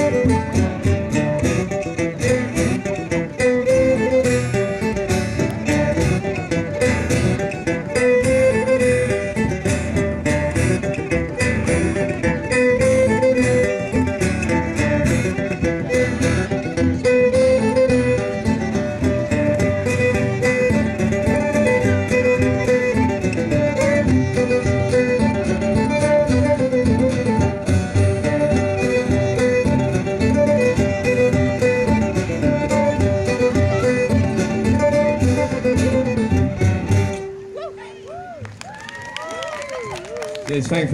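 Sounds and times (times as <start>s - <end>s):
frame drum: 0.0s - 37.2s
banjo: 0.0s - 37.5s
acoustic guitar: 0.0s - 38.0s
fiddle: 0.0s - 40.9s.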